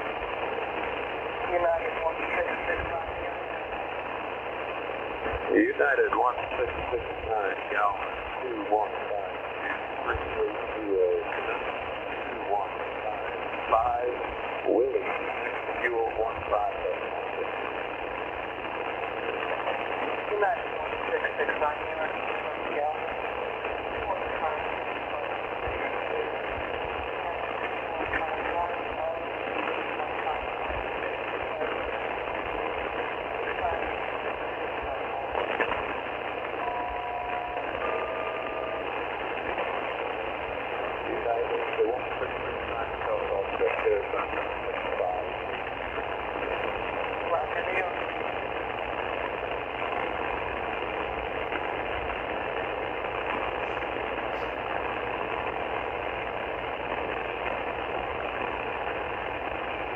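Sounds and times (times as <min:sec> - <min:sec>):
broken radio voice traffic: 0:00.0 - 0:59.9
radio static hiss: 0:00.0 - 0:59.9
steady radio tones: 0:00.0 - 0:59.9.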